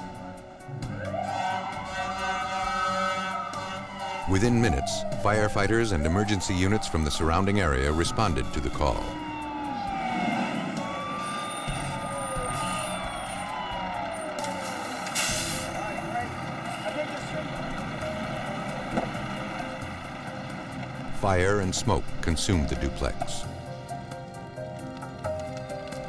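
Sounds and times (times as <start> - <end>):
fire engine sirens wailing: 0.0 - 26.0
truck engine running: 3.6 - 25.9.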